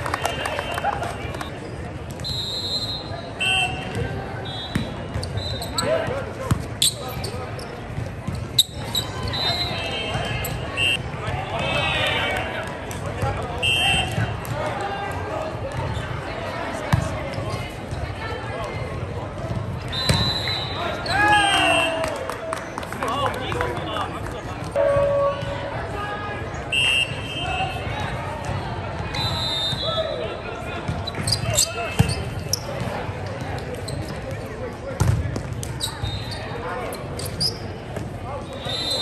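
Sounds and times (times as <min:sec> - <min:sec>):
background chatter: 0:00.0 - 0:39.0
short high shoe squeaks: 0:04.7 - 0:06.0, 0:06.8 - 0:07.8, 0:08.5 - 0:11.0, 0:31.0 - 0:32.8, 0:35.7 - 0:37.7
players shouting: 0:19.9 - 0:22.3.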